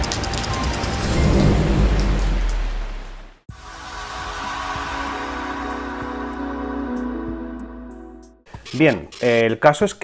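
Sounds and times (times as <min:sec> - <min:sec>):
soft music: 0:00.0 - 0:02.6, 0:03.5 - 0:08.4
rain hiss: 0:00.0 - 0:05.0
deep thunder rumble: 0:00.5 - 0:03.4.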